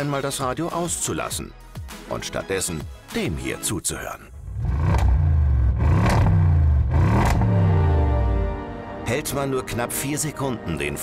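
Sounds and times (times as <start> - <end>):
car engine revving: 4.4 - 8.3.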